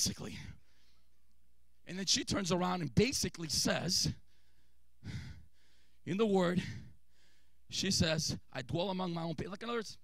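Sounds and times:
man breathing into microphone: 0:04.2 - 0:06.0, 0:06.6 - 0:07.7.

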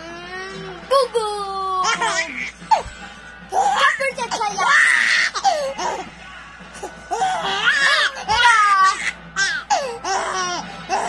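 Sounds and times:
baby laughing: 0:01.8 - 0:02.9.

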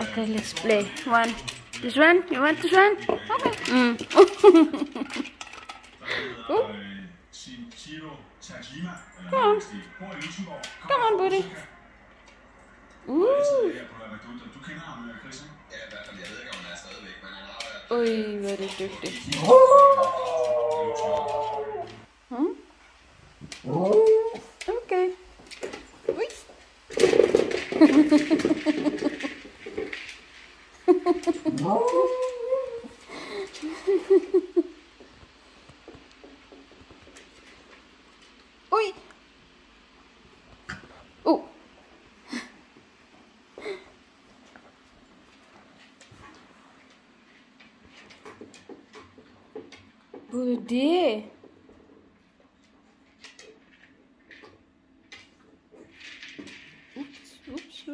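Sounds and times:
dog claws clicking on floor: 0:00.0 - 0:06.0, 0:15.8 - 0:22.0, 0:23.4 - 0:34.4, 0:44.4 - 0:50.3, 0:52.6 - 0:57.9
dog howling whine: 0:19.3 - 0:22.1, 0:23.6 - 0:24.6, 0:31.6 - 0:33.0.

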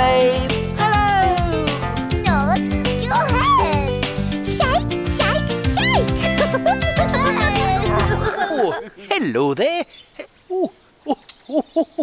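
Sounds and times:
person chuckling: 0:06.2 - 0:09.3, 0:10.2 - 0:12.0.

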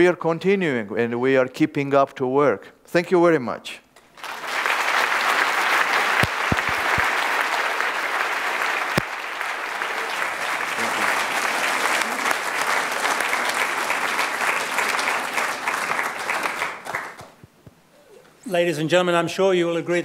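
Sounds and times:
audience applauding: 0:04.1 - 0:17.4.

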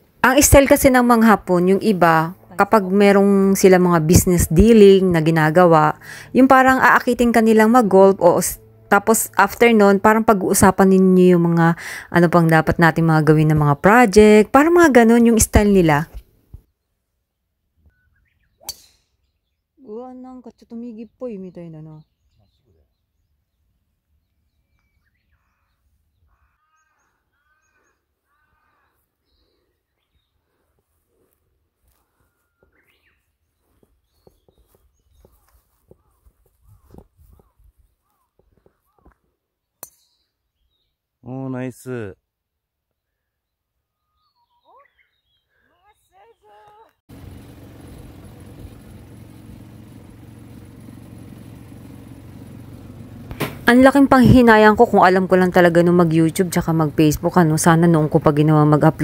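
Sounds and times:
golf cart driving: 0:00.0 - 0:15.9, 0:47.1 - 0:59.0
low hum: 0:00.0 - 0:16.2, 0:47.1 - 0:59.0
bird calling: 0:17.8 - 0:19.6, 0:20.9 - 0:30.6, 0:31.9 - 0:39.4, 0:43.0 - 0:47.6.

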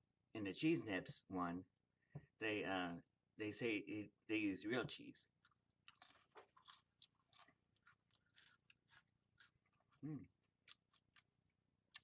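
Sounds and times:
crackers being chewed: 0:05.4 - 0:12.0.

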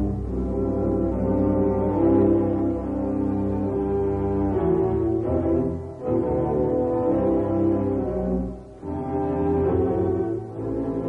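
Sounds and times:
low brass sustained chords: 0:00.0 - 0:11.0.

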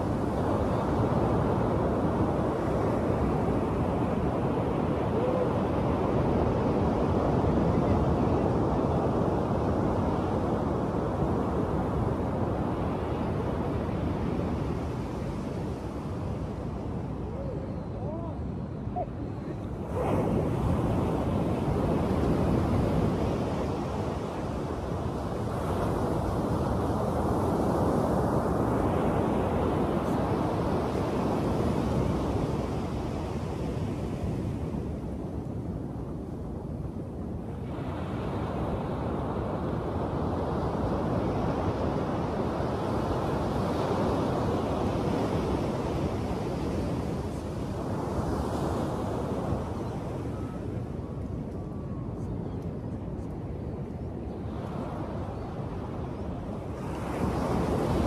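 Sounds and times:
wind on microphone: 0:00.0 - 0:58.0.

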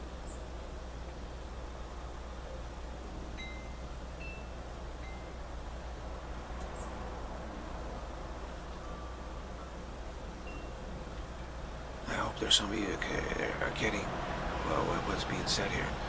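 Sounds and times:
background hiss: 0:00.0 - 0:16.0
high ringing notes: 0:03.4 - 0:05.4, 0:10.4 - 0:10.9.

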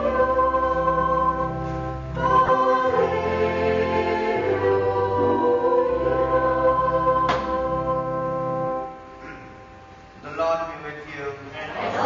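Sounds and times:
women's choir singing: 0:00.0 - 0:08.8, 0:11.7 - 0:12.0
sustained accompaniment: 0:00.0 - 0:11.0.

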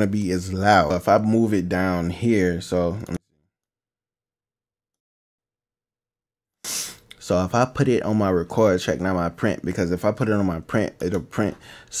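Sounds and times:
man speaking: 0:00.0 - 0:03.2
short breath-like hiss: 0:06.6 - 0:07.1.

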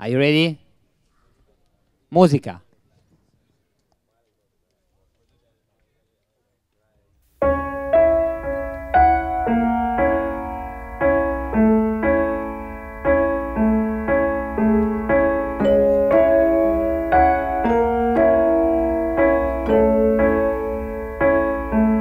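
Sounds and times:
piano music: 0:07.4 - 0:22.0.

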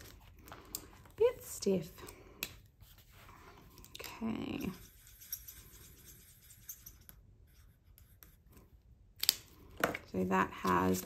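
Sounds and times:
marker scratching on paper: 0:04.6 - 0:08.5.

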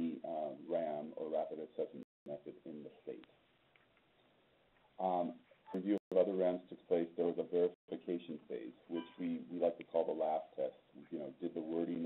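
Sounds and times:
man speaking: 0:00.0 - 0:03.3, 0:05.0 - 0:12.0.

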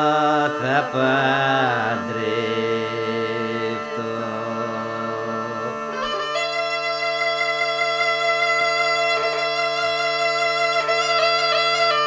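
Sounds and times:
bagpipe drone: 0:00.0 - 0:12.0
person singing ornamented melody: 0:00.0 - 0:12.0.

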